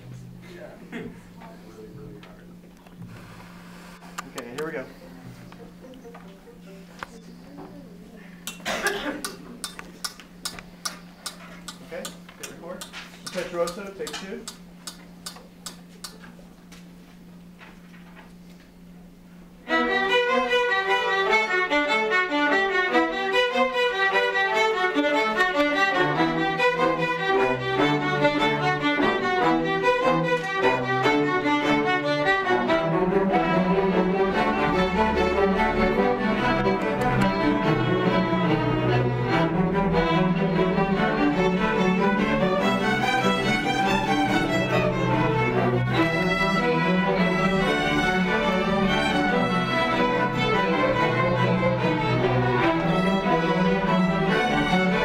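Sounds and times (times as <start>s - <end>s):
string orchestra playing: 4.4s - 7.2s, 19.6s - 55.0s.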